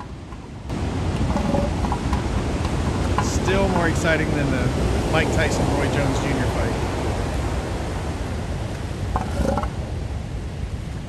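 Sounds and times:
wind noise on microphone: 0.0s - 11.0s
surf breaking on a beach: 0.7s - 11.0s
elephant seal calls: 1.2s - 2.1s, 9.1s - 9.8s.

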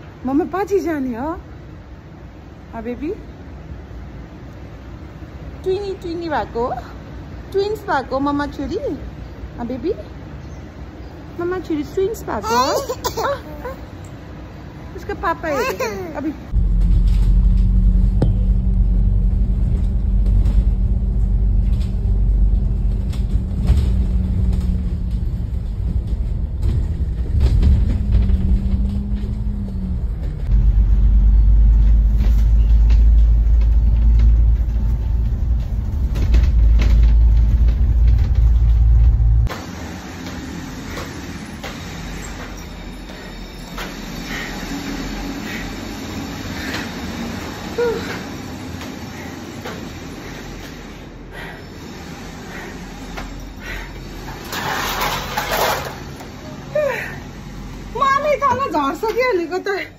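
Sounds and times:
bus engine rumble from inside: 16.4s - 39.5s.

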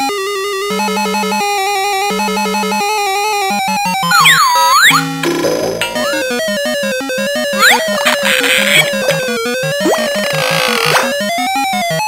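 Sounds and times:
electronic tune in beeping tones: 4.0s - 5.2s, 5.8s - 6.6s, 7.5s - 11.0s.

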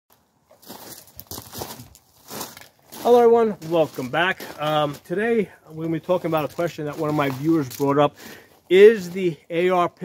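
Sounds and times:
rustling and crunching: 0.1s - 9.3s.

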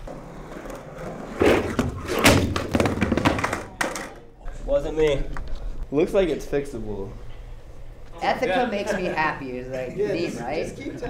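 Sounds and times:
skateboard rolling on hard floor: 0.0s - 4.2s
skateboard thuds and clacks: 1.4s - 4.1s.

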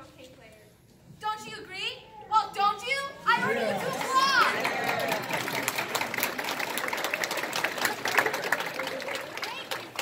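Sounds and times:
audience clapping: 3.3s - 10.0s.

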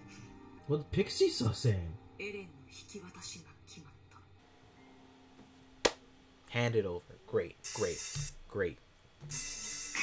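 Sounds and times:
faint steady hum: 1.9s - 10.0s
hand clap: 5.8s - 6.0s.

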